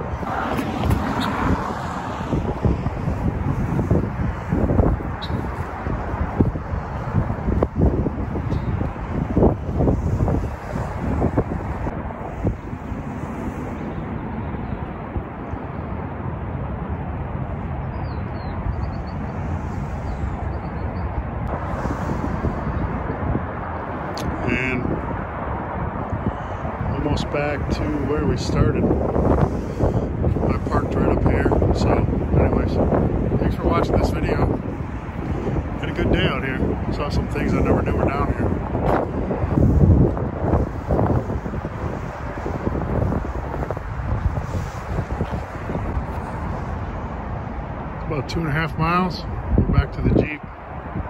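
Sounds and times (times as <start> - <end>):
wind rumbling on microphone: 0.0 - 51.0
high bird chirps: 5.2 - 5.5, 17.8 - 19.3.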